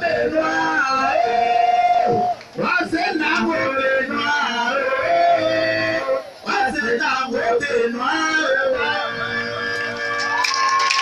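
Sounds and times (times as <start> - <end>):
a cappella singing: 0.0 - 10.8.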